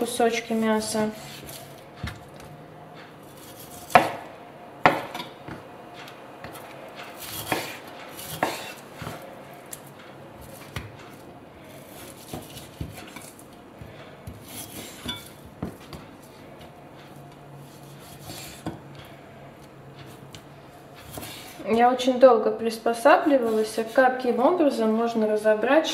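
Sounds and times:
knife chopping on wooden board: 0:01.2 - 0:02.5, 0:03.3 - 0:09.3, 0:11.8 - 0:16.7, 0:21.0 - 0:21.6.

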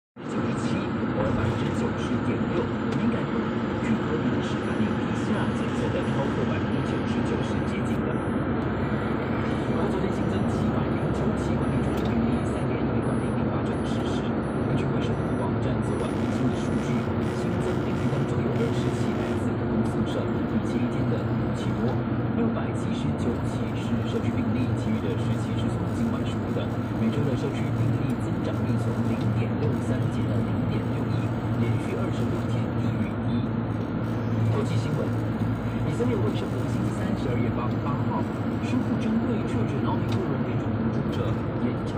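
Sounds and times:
car radio voices and music: 0:00.2 - 0:41.9
car road and engine noise: 0:00.2 - 0:41.9.

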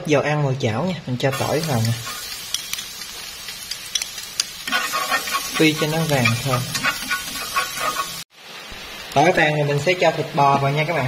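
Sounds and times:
garlic sizzling in oil: 0:01.3 - 0:11.0.

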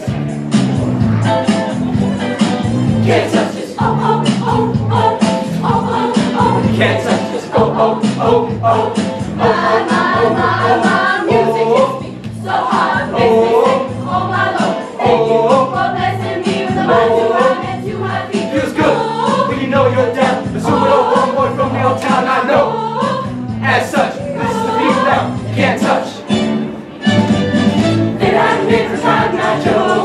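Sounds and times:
pulsing bass line: 0:00.1 - 0:18.2, 0:18.8 - 0:22.0
choir singing: 0:03.0 - 0:26.2, 0:28.1 - 0:30.0.

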